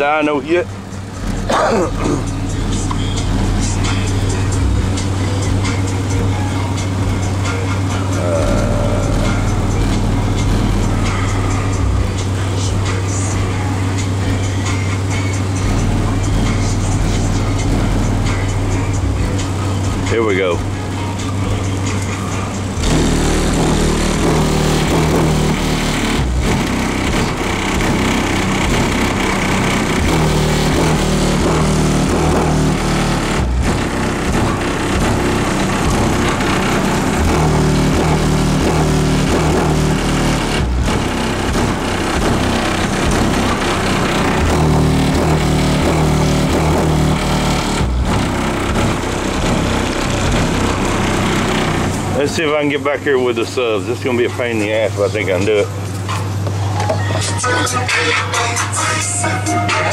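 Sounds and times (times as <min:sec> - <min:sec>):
bass-heavy music from car subwoofers: 0:00.0 - 0:59.9.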